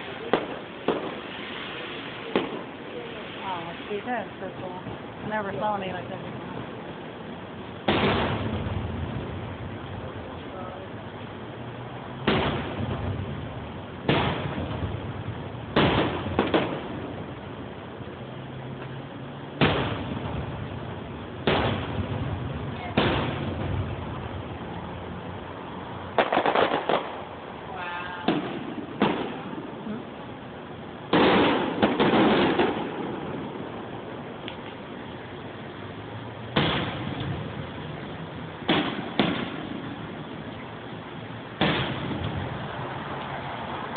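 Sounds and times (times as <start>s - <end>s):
firework shells bursting: 0.0s - 25.0s, 26.0s - 43.9s.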